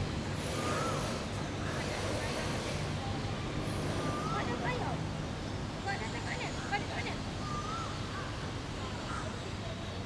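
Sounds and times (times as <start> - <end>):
whistled bird calls: 0.4 - 1.8, 3.9 - 4.8, 7.4 - 8.3.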